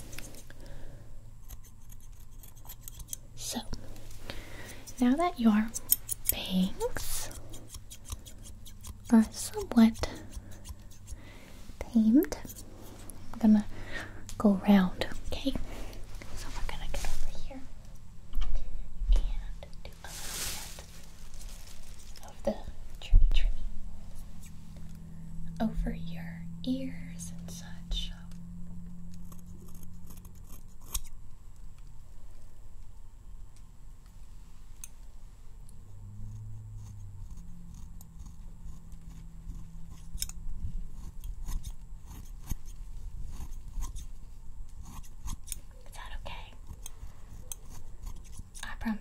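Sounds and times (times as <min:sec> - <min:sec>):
scissors snipping hair: 0:01.4 - 0:03.2, 0:04.6 - 0:11.2, 0:12.1 - 0:13.1, 0:29.1 - 0:31.2, 0:36.8 - 0:44.1, 0:44.7 - 0:45.7, 0:46.6 - 0:48.8.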